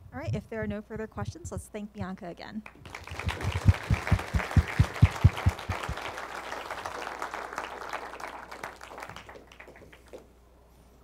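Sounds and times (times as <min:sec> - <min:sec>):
hands clapping loudly close by: 0:02.6 - 0:10.3
audience applauding: 0:02.8 - 0:10.2.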